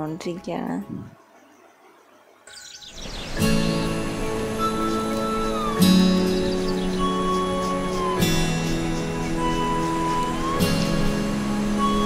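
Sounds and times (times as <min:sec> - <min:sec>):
soft background music: 0:00.0 - 0:12.0
birds chirping: 0:00.5 - 0:12.0.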